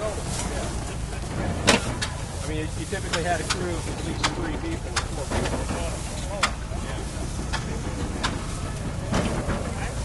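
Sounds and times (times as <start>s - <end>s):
hay baler rumbling: 0.0s - 10.0s.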